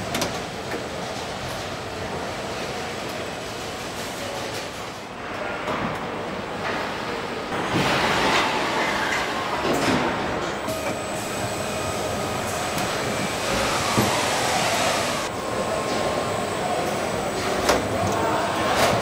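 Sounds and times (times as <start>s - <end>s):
machinery rumble and hiss: 6.1s - 19.0s.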